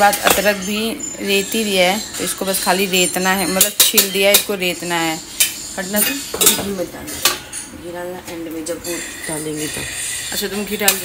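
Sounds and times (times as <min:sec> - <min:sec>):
metal utensils clinking on pan: 0:00.0 - 0:11.0.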